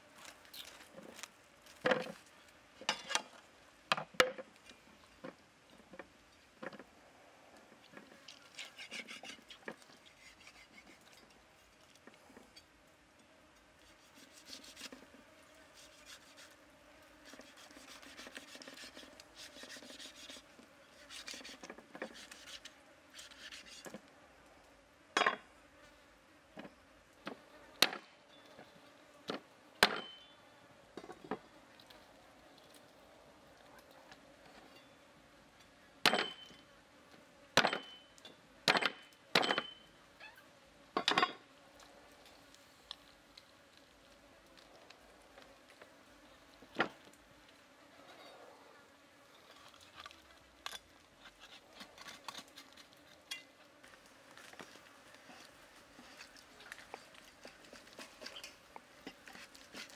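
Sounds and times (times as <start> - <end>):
cleaver scraping raw meat: 8.2 - 12.0, 13.8 - 15.0, 15.7 - 16.6, 17.2 - 24.0, 49.4 - 53.5, 54.4 - 59.9.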